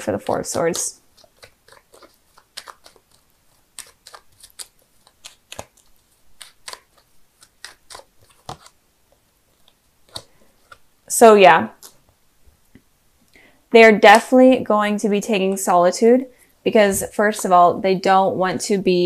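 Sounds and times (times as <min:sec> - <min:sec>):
cards being shuffled: 0:00.0 - 0:10.9.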